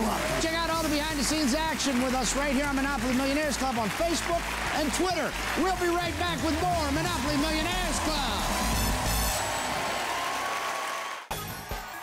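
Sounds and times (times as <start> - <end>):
break music: 0.0 - 9.8
audience applauding: 0.0 - 12.0.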